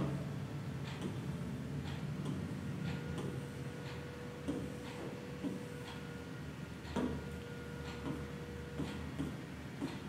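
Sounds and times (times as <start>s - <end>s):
faint steady hum: 0.0s - 10.0s
taps on a screen: 1.8s - 6.1s, 6.8s - 10.0s.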